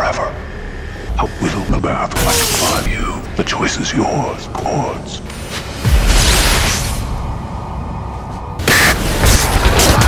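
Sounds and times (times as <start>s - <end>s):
horror film score: 0.0s - 10.0s.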